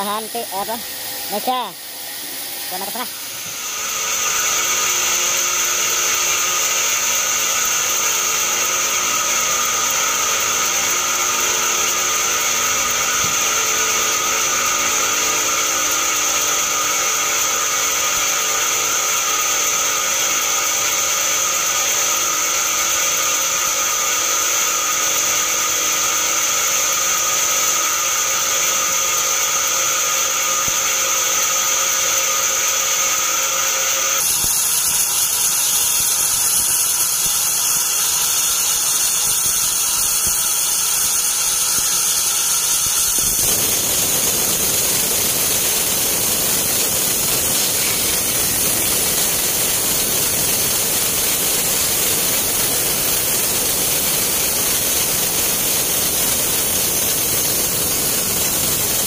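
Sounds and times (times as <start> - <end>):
band saw droning and whining: 0.0 - 59.0.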